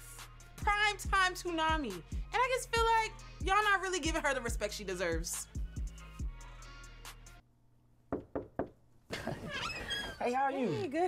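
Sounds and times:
knocks on a door: 8.1 - 8.8.

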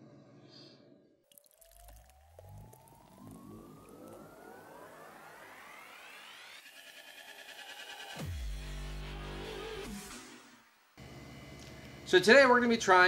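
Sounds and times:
tone rising in pitch: 2.5 - 8.2
electronic intro music: 2.6 - 10.4.

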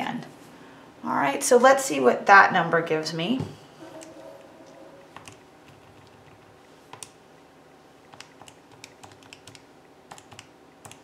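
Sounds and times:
calculator keys clicking: 5.2 - 7.2, 8.1 - 11.0.

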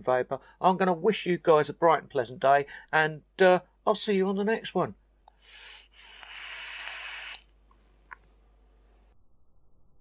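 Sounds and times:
breathy e-cigarette drag hiss: 5.4 - 7.6.

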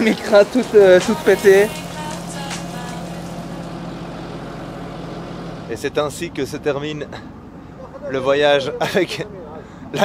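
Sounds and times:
tow truck running with low hum: 0.0 - 10.0.

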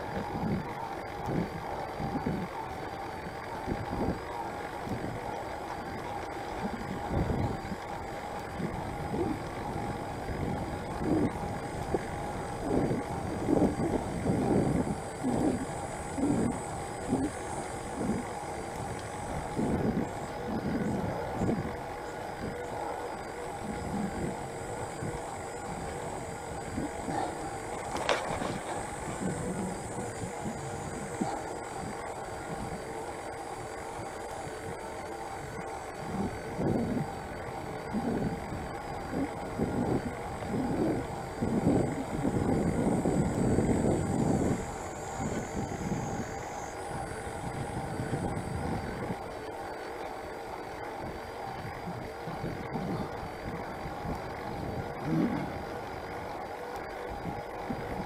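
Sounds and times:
wind buffeting microphone: 0.0 - 49.4, 51.0 - 58.0
faint steady whine: 0.0 - 58.0.

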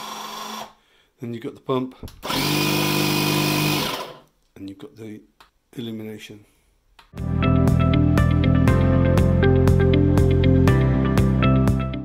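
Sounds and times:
air pump motor humming: 2.2 - 4.2.

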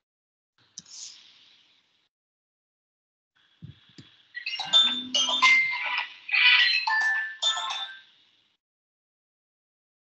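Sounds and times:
electronic ringtone tune: 4.4 - 8.0.

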